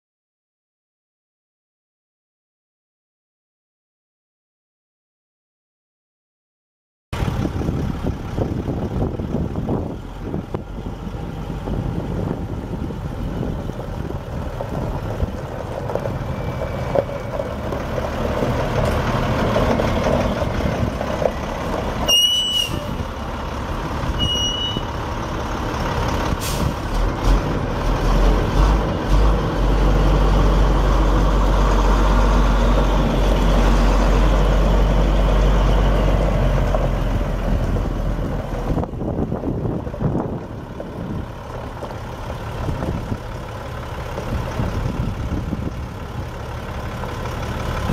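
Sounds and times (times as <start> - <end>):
diesel truck engine running: 7.2 - 47.9
short high beeps: 22.1 - 22.9, 24.2 - 24.9.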